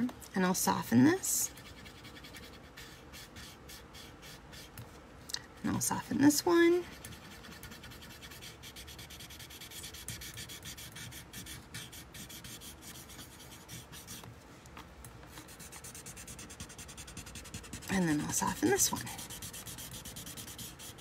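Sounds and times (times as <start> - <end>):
pencil rubbing on paper: 1.4 - 4.8, 6.9 - 14.2, 15.4 - 21.0.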